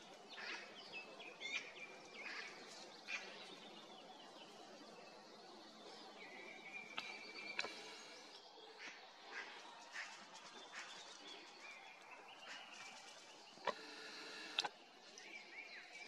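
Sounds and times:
bird chirps: 0:05.9 - 0:08.4.

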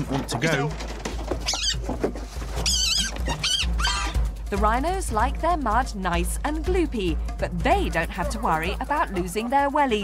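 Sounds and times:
otter squeaking: 0:00.0 - 0:04.3
background music: 0:00.0 - 0:10.0.

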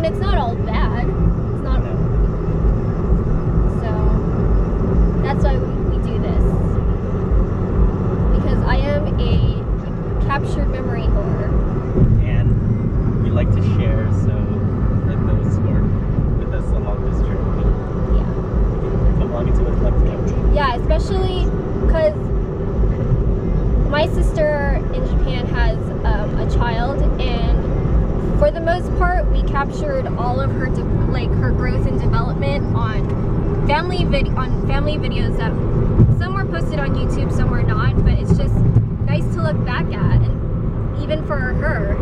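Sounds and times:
people talking: 0:00.0 - 0:02.0, 0:03.7 - 0:04.3, 0:05.2 - 0:06.7, 0:08.3 - 0:11.6, 0:12.2 - 0:12.5, 0:13.2 - 0:18.3, 0:19.0 - 0:22.2, 0:23.9 - 0:27.6, 0:28.2 - 0:33.1, 0:33.7 - 0:40.4, 0:41.0 - 0:42.0
car engine and tyre rumble: 0:00.0 - 0:42.0.

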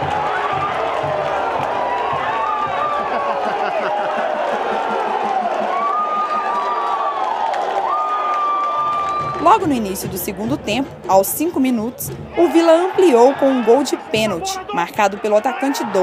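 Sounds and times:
stadium crowd cheering: 0:00.0 - 0:16.0.

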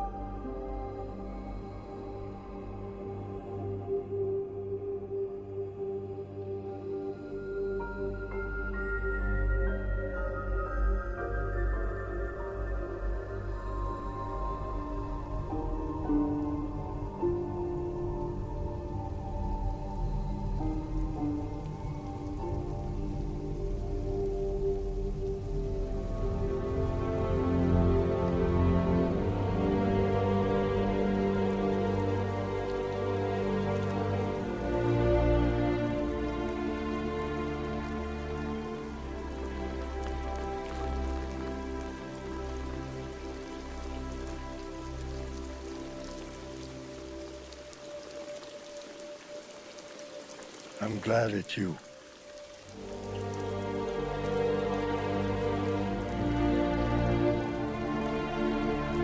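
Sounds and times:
soft film score: 0:00.0 - 0:59.0
heavy rain falling: 0:13.9 - 0:59.0.

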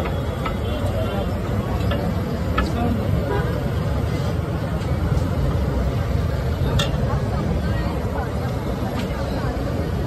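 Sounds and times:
crowd chatter: 0:00.0 - 0:10.0
low traffic rumble: 0:00.0 - 0:10.0.

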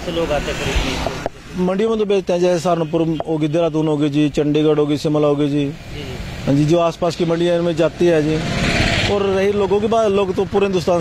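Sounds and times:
man speaking: 0:00.0 - 0:08.5, 0:09.1 - 0:11.0
rushing noise: 0:05.8 - 0:09.8.

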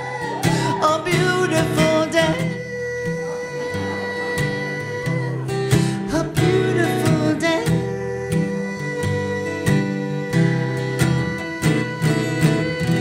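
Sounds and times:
acoustic guitar strummed chords: 0:00.0 - 0:13.0
person singing: 0:00.0 - 0:13.0.

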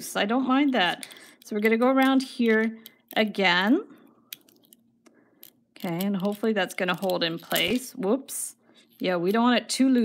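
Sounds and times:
woman speaking: 0:00.0 - 0:04.0, 0:05.8 - 0:10.0.

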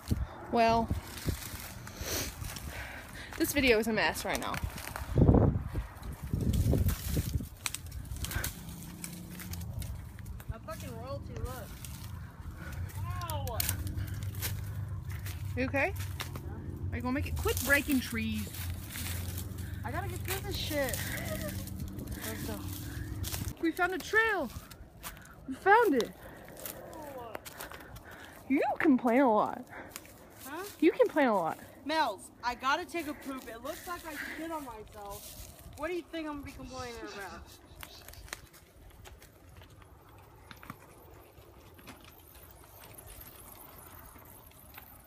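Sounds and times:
wind rumble on microphone: 0:00.0 - 0:23.6
leaves crackling: 0:00.0 - 0:28.6, 0:29.7 - 0:45.0
branches and twigs snapping: 0:04.1 - 0:28.5, 0:37.6 - 0:45.0.

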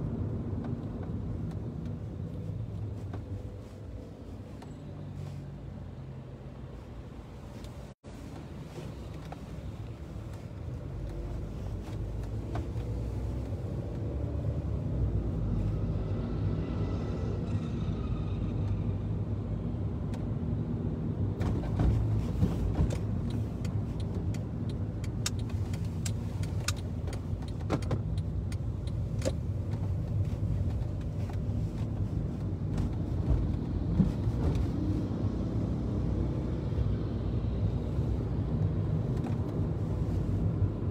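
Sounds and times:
car engine and road rumble: 0:00.0 - 0:40.9
sharp clicks and knocks: 0:21.4 - 0:32.0.

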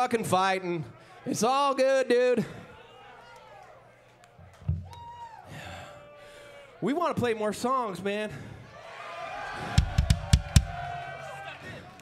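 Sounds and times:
kick and snare drum hits: 0:09.8 - 0:10.8.

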